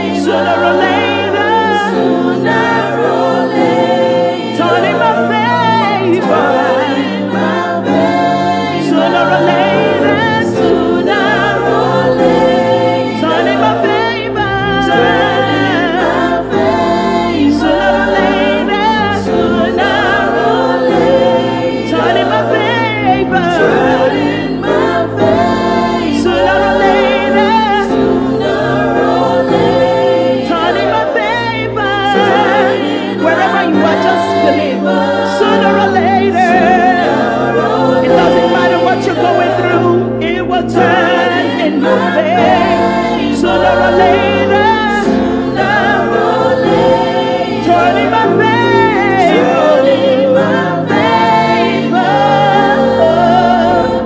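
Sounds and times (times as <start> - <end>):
backing vocals: 0.0 - 54.0
keyboard accompaniment: 0.0 - 54.0.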